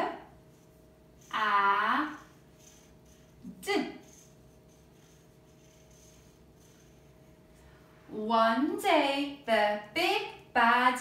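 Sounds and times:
faint steady hum: 0:00.0 - 0:11.0
marker writing on paper: 0:00.5 - 0:07.6.

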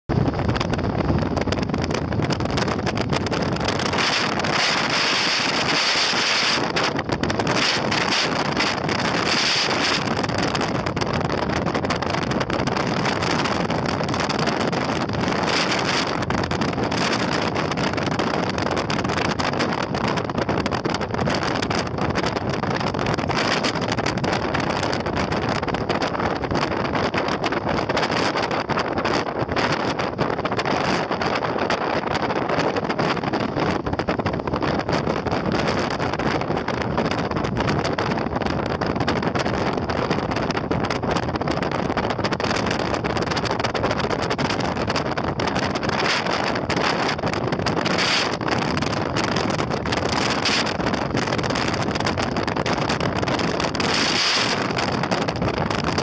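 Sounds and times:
vehicle road noise: 0:00.1 - 0:22.0, 0:41.4 - 0:56.0
wind buffeting microphone: 0:00.1 - 0:56.0.

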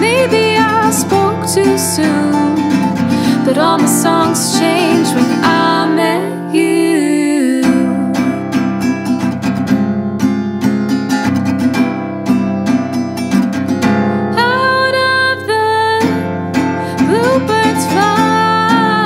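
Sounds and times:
acoustic guitar strumming: 0:00.0 - 0:19.0
held melody with bending notes: 0:00.0 - 0:19.0.

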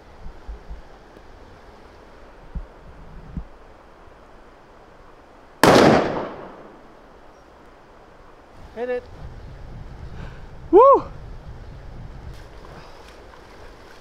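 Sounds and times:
rifle shot: 0:05.6 - 0:06.9.

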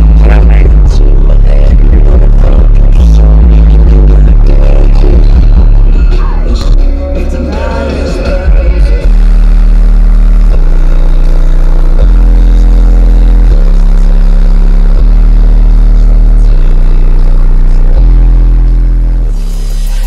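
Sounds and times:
subwoofer playing deep bass tones: 0:00.0 - 0:20.0.

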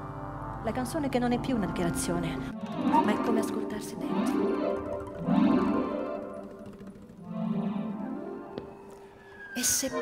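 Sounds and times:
accordion: 0:00.0 - 0:08.4
classical guitar: 0:02.0 - 0:08.6.

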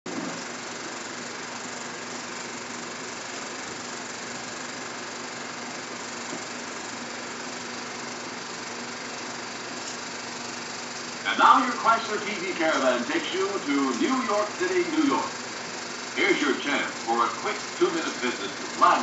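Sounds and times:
film projector whirring: 0:00.1 - 0:19.0.

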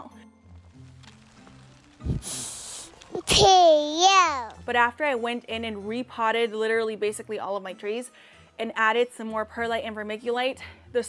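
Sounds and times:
soft background music: 0:00.0 - 0:11.0
cartoon airy hiss with thump: 0:02.0 - 0:02.9.

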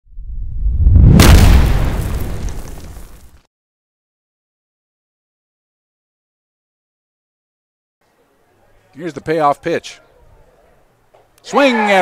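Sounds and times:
low rumble: 0:00.1 - 0:03.0
deep boom: 0:00.2 - 0:03.2
sharp impact hit: 0:00.8 - 0:03.1.

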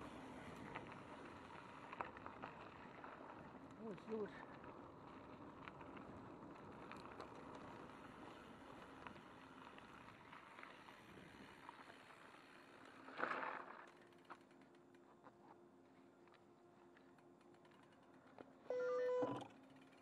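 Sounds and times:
bike tyres rolling on gravel: 0:00.0 - 0:15.3
bike rattles and clicks: 0:00.0 - 0:15.6, 0:16.2 - 0:18.6, 0:19.4 - 0:20.0.

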